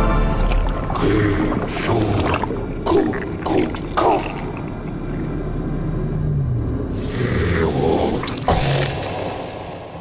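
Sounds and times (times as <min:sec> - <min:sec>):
low rumbling drone: 0:00.2 - 0:10.0.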